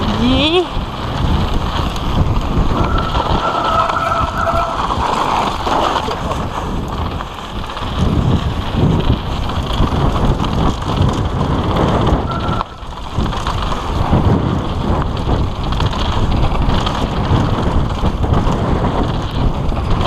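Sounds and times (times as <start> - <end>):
tyres rolling on dirt trail: 0.0 - 20.0
wind buffeting microphone: 0.0 - 20.0.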